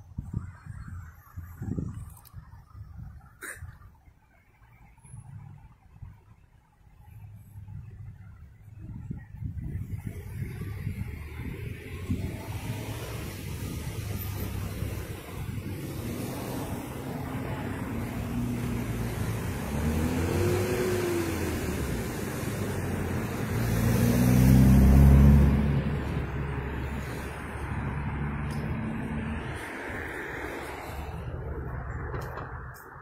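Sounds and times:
car engines in passing traffic: 0.0 - 33.0
vehicle driving close by: 9.6 - 33.0.

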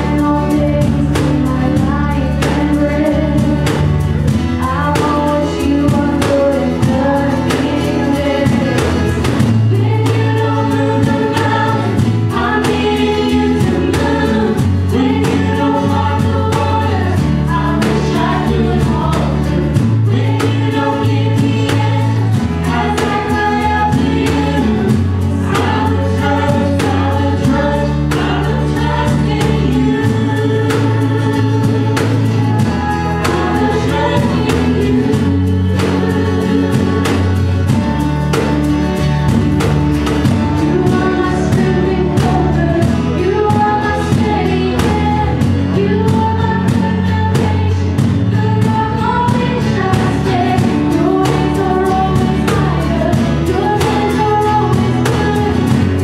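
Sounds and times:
drum kit beat: 0.0 - 56.0
guitars: 0.0 - 56.0
voices singing together: 0.0 - 56.0.

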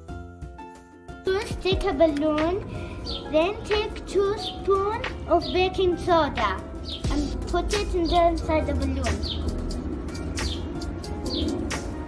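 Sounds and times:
small birds chirping: 2.2 - 11.9.

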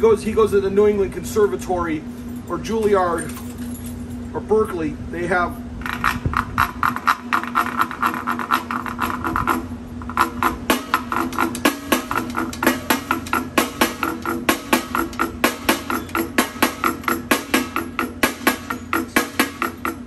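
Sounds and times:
drumstick on wooden washboard: 5.8 - 20.0.

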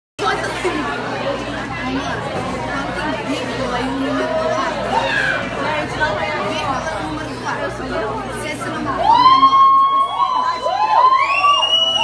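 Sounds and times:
students chattering: 0.2 - 12.0.

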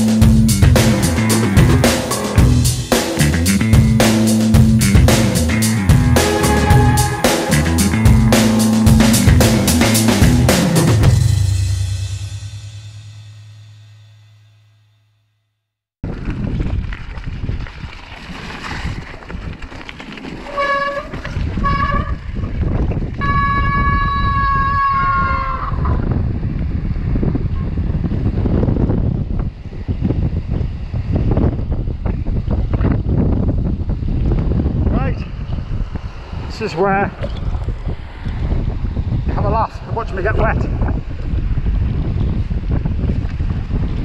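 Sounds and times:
background music: 0.0 - 12.3
mountain bike on stony track: 16.0 - 25.5
wind buffeting microphone: 16.0 - 44.0.

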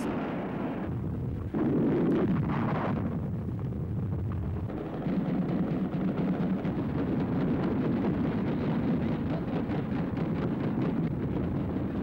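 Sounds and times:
continuous low rumble: 0.0 - 12.0.

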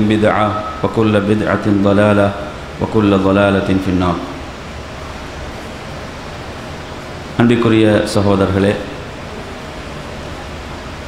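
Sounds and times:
room tone hiss: 0.0 - 11.0.

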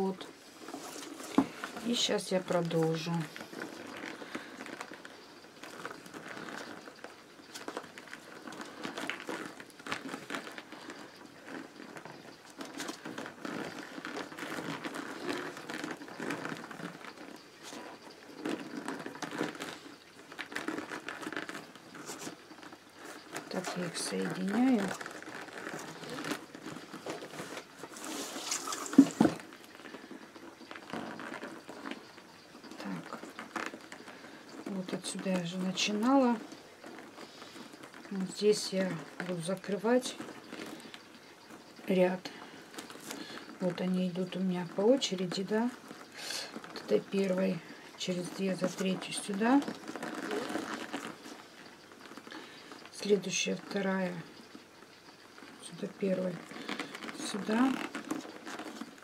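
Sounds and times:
newspaper rustling and crinkling: 0.0 - 59.0
soft scraping: 0.0 - 59.0.

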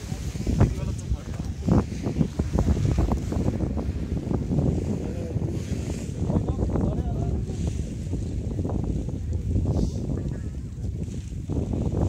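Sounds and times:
faint voices: 0.0 - 4.1
wind buffeting microphone: 0.0 - 12.0.

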